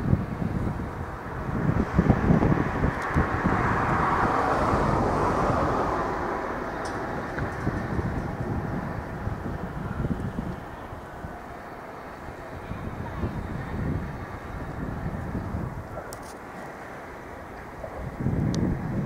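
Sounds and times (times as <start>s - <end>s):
electric train rushing: 0.0s - 19.0s
wind buffeting microphone: 0.0s - 19.0s.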